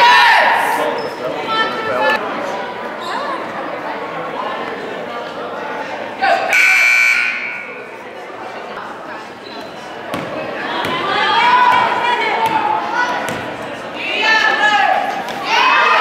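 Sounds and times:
crowd chatter: 0.0s - 16.0s
scoreboard horn buzzing: 6.5s - 7.7s.

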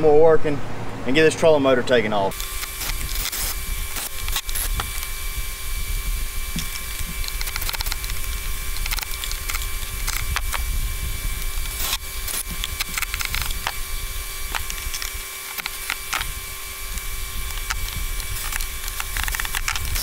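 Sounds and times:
fan running steadily: 0.0s - 20.0s.

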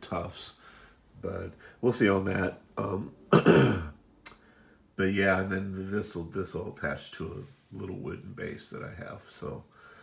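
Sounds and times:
man clearing his throat: 3.3s - 4.0s.

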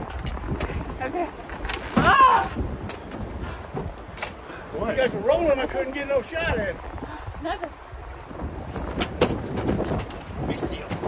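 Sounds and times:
river and boat rumble: 0.0s - 11.0s
wind on microphone: 0.0s - 11.0s.

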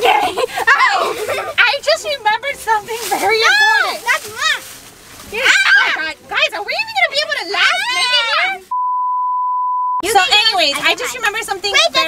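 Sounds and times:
girls' high-pitched voices: 0.0s - 4.7s, 5.3s - 8.7s, 10.0s - 12.0s
steady pure-tone beep: 8.7s - 10.0s.

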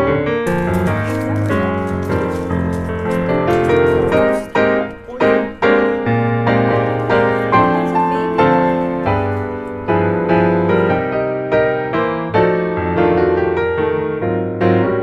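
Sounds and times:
piano music: 0.0s - 15.0s.

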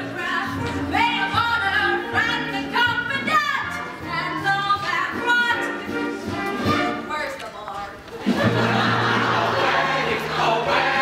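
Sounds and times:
woman singing: 0.0s - 6.2s
cast singing with accompaniment: 9.0s - 11.0s.

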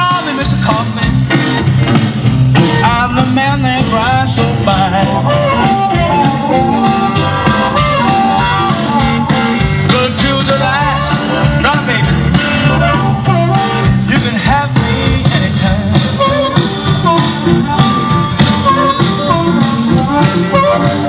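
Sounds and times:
drums: 0.0s - 21.0s
electric guitar: 0.0s - 21.0s
amplified blues harmonica: 1.3s - 21.0s.

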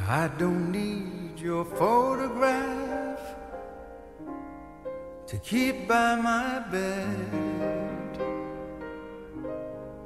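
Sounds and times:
man singing a ballad: 0.0s - 3.9s, 5.2s - 8.8s
soft piano accompaniment: 0.0s - 10.0s.

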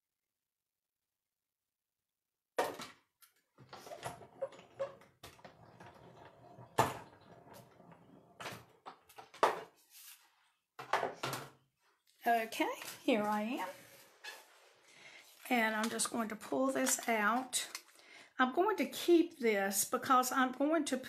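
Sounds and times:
objects knocking and clattering: 2.6s - 9.8s, 10.8s - 11.7s.

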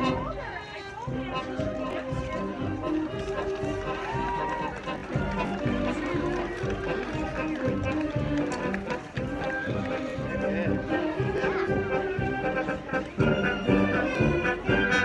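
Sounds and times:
crowd voices: 0.0s - 15.0s
marching band brass: 0.0s - 15.0s
marching band drums: 1.1s - 10.8s.

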